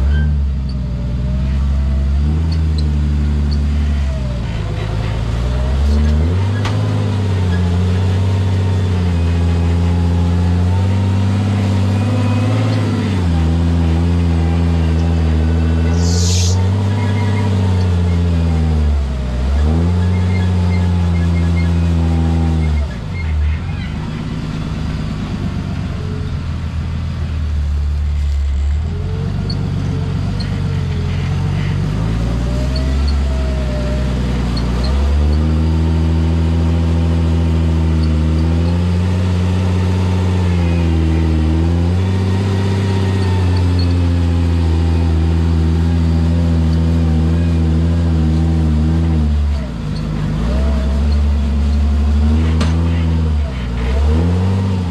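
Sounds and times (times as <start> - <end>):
engine running at low revs: 0.0 - 54.9.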